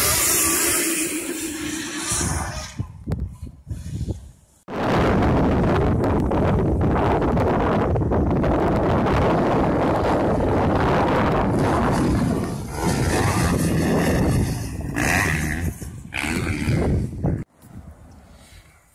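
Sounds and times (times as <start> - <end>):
electric motorbikes passing: 0.0 - 2.9, 9.5 - 17.2
wind buffeting microphone: 1.6 - 18.8.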